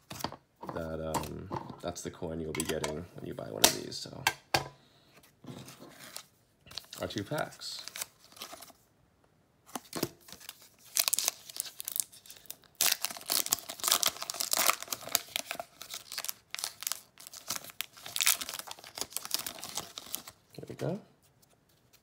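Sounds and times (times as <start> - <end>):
foil wrapper tearing and crinkling: 10.3 - 20.4.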